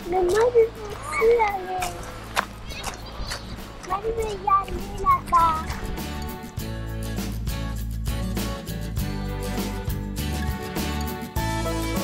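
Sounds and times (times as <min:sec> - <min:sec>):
footsteps crunching on gravel: 0:00.0 - 0:05.9.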